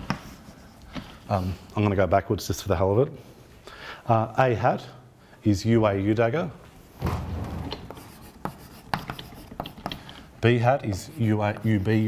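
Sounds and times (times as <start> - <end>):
chalk tapping and scratching: 0.0 - 1.6, 7.7 - 12.0.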